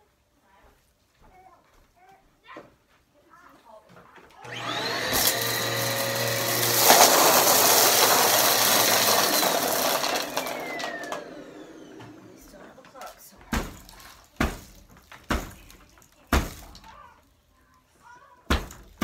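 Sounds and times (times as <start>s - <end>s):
vacuum cleaner motor: 4.4s - 13.1s.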